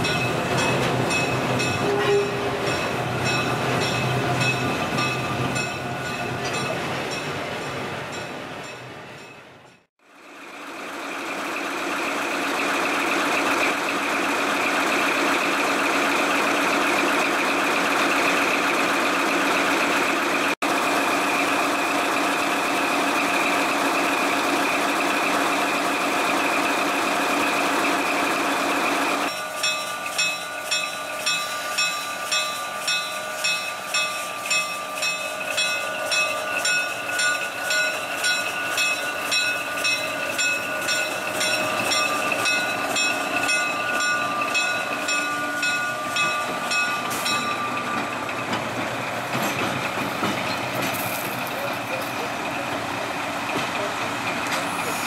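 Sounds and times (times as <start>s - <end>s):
wheels clacking over rail joints: 0.0s - 9.8s, 26.8s - 55.0s
diesel locomotive engine running: 0.0s - 55.0s.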